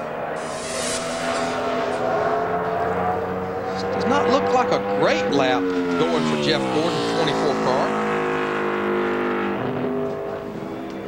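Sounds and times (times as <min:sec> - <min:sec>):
race car engine decelerating: 0:00.0 - 0:11.0.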